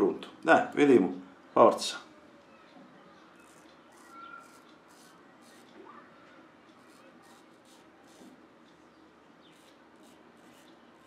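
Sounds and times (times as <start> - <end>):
razor scraping beard stubble: 3.4 - 5.8, 6.8 - 8.4, 9.5 - 11.0.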